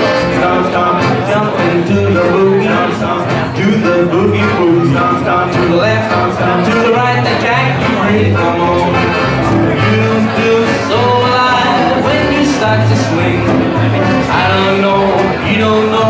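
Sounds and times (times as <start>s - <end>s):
strummed acoustic guitar chords: 0.0s - 16.0s
upright double bass: 0.0s - 16.0s.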